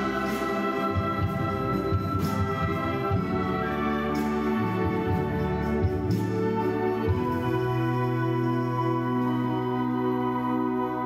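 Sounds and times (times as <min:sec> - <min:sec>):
brass holding sustained chords: 0:00.0 - 0:11.0.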